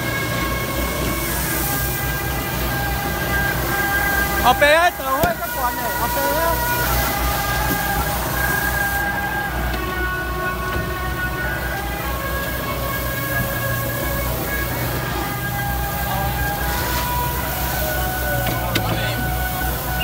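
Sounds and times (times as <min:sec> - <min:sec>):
diesel engine rumble: 0:00.0 - 0:20.0
long held musical notes: 0:00.0 - 0:20.0.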